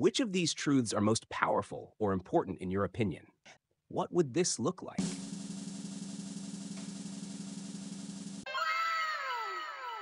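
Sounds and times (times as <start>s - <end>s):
drum roll: 5.0s - 8.5s.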